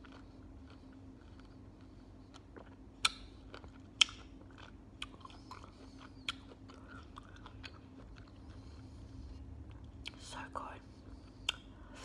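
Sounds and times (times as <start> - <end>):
chewing fruit: 0.0 - 12.0
wet mouth clicks: 2.6 - 3.3, 11.4 - 11.7.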